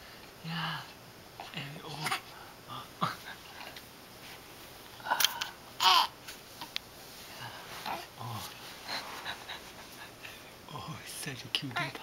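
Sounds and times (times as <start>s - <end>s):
baby grunting and fussing: 1.4s - 2.3s, 5.2s - 6.2s, 7.8s - 8.5s.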